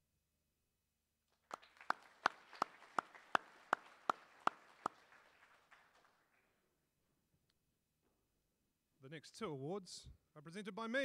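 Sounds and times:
hands clapping sharply nearby: 1.3s - 6.7s
audience applause: 1.4s - 6.5s.

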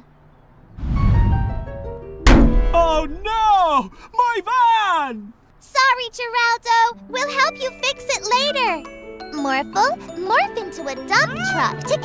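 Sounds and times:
descending musical notes: 0.6s - 3.9s
low thud: 0.7s - 3.7s
loud crash: 0.7s - 3.8s.

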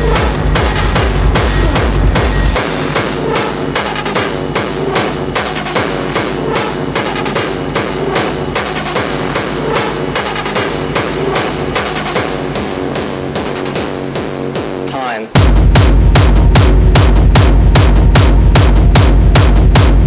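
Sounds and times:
hardcore electronic music: 0.0s - 20.0s.

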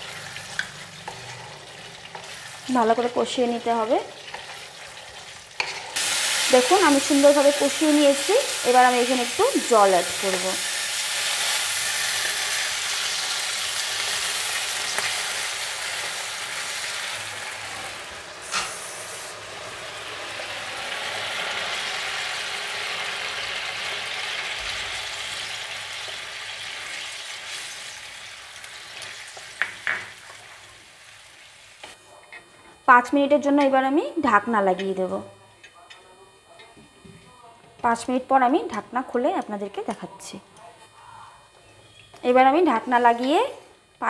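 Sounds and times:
food sizzling in a pan: 0.0s - 35.2s.

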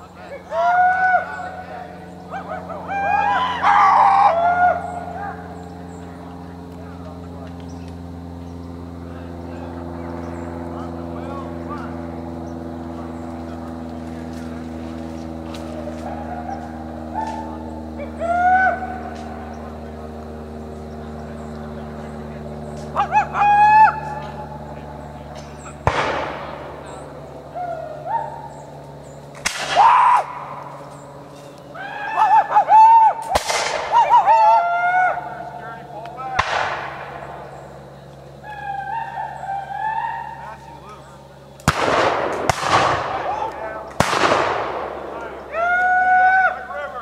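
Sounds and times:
men shouting: 0.0s - 7.3s, 9.2s - 20.4s, 21.1s - 25.9s, 26.8s - 29.0s, 29.6s - 30.8s, 31.5s - 41.5s, 45.0s - 47.0s
musket shots with echo: 25.8s - 27.1s, 29.4s - 29.8s, 33.2s - 34.0s, 36.3s - 37.4s, 41.6s - 45.2s.

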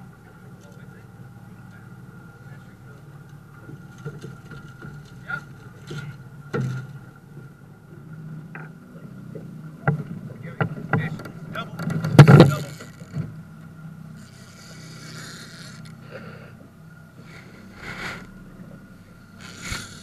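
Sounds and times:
boat motor humming: 0.0s - 20.0s
short hiss: 17.2s - 18.3s, 19.4s - 20.0s.

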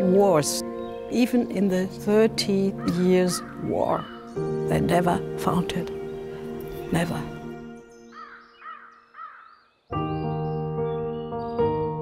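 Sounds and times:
background music: 0.0s - 8.8s, 9.9s - 12.0s
crow-like bird calling: 2.7s - 4.5s, 8.1s - 9.9s.

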